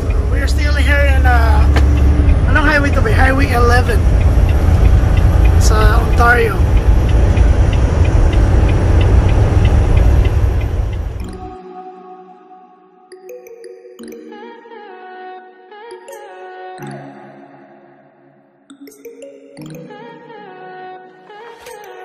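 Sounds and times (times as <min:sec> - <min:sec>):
person talking: 0:00.0 - 0:01.8, 0:02.5 - 0:04.0, 0:05.6 - 0:06.7
diesel engine and road noise: 0:00.0 - 0:11.4.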